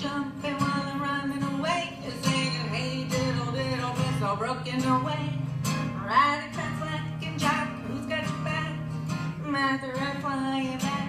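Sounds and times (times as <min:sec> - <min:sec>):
acoustic guitar strumming: 0:00.0 - 0:11.0
woman singing: 0:00.0 - 0:11.0.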